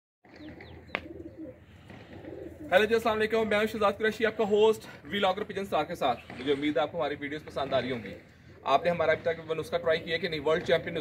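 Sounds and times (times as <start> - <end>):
pigeons cooing: 0.3 - 3.6.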